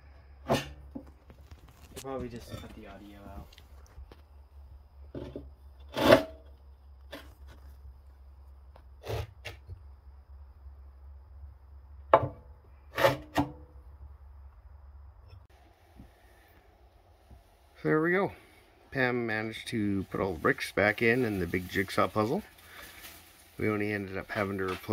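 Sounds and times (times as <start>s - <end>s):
low hum: 13.5s - 19.0s.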